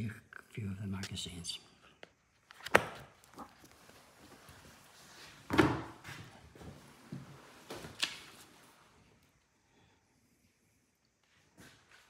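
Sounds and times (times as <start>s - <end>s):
book handling sound: 2.0s - 8.9s.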